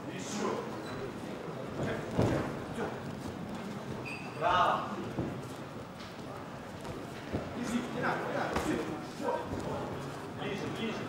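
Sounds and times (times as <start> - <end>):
murmur of crowd in hall: 0.0 - 11.0
footwork on ring canvas: 1.6 - 4.1, 5.0 - 10.8.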